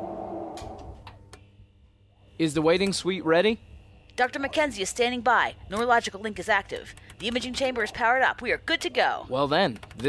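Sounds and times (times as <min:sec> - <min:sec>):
electronic hum: 0:00.0 - 0:09.3.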